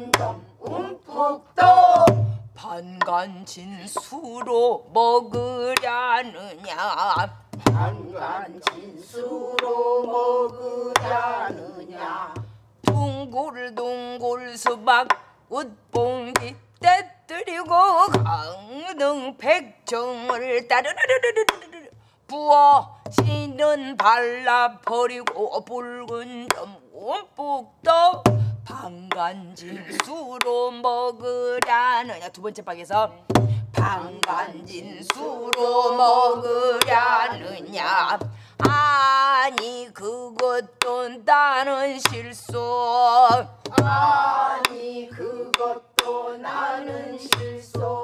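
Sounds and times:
stick knocking on barrel drum: 0.0s - 0.8s, 1.6s - 3.2s, 7.0s - 8.8s, 9.5s - 14.0s, 28.2s - 29.3s, 31.2s - 32.2s, 32.9s - 39.7s, 42.0s - 48.0s
woman singing: 0.0s - 48.0s.

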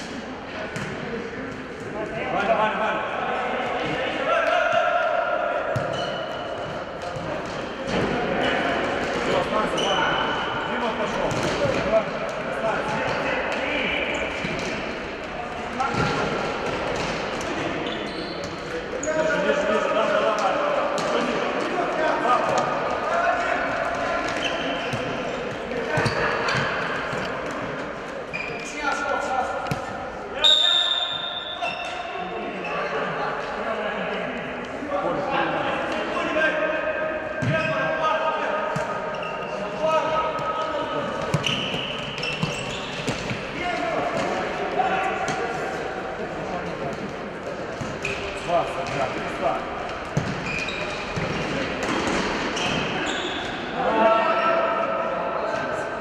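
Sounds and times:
players shouting: 52.8s - 55.1s.

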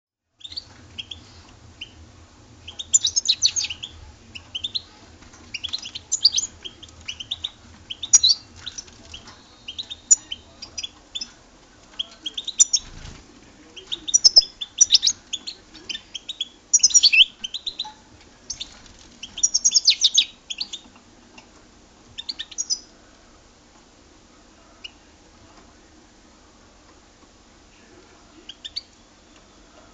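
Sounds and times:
faint low hum: 0.3s - 29.9s
finch twittering song: 0.4s - 2.0s, 2.6s - 11.4s, 12.0s - 13.0s, 13.8s - 20.9s, 22.2s - 22.9s.

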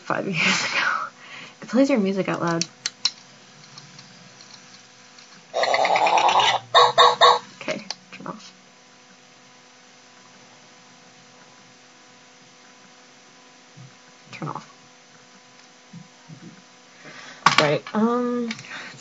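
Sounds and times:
faint electrical hum: 0.0s - 19.0s
robotic toy dog sound effects: 5.6s - 7.5s.

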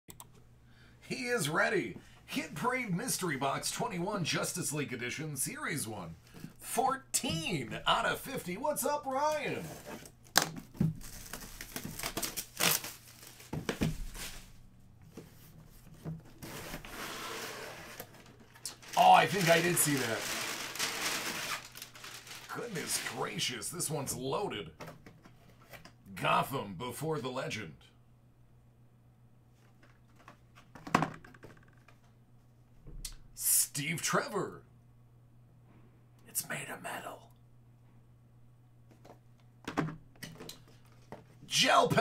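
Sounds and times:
packing paper crinkling: 9.3s - 14.6s, 16.5s - 23.4s
clicks and knocks of packaging: 10.3s - 14.3s.

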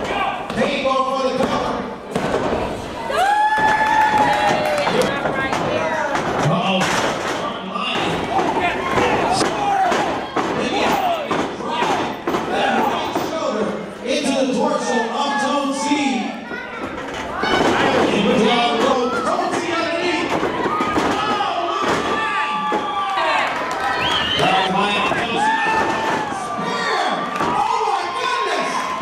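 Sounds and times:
spectators shouting: 8.1s - 12.9s, 20.3s - 29.0s.

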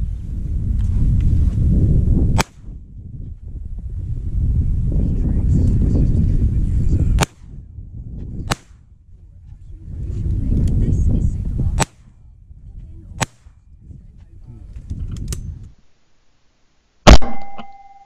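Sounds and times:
wind gusts on microphone: 0.0s - 15.8s
shotgun shots: 2.4s - 2.7s, 7.2s - 7.5s, 8.5s - 8.8s, 17.1s - 17.6s.

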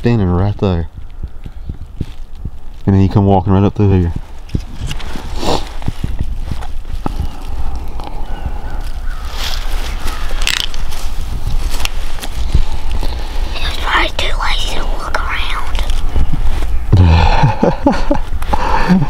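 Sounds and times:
low rumble on microphone: 0.0s - 14.9s
dry leaves rustling and crackling: 1.0s - 14.4s.

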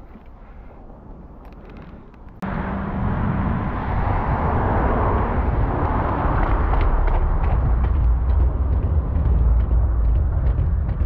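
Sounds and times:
rumbling tyre noise: 0.0s - 11.0s
wind rushing over microphone: 2.3s - 11.0s.

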